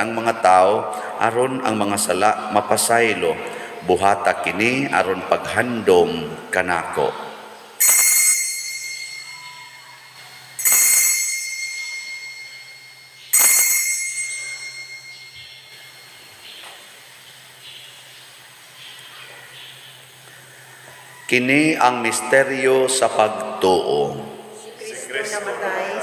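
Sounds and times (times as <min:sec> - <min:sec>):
altar bell ringing: 0:07.8 - 0:16.6.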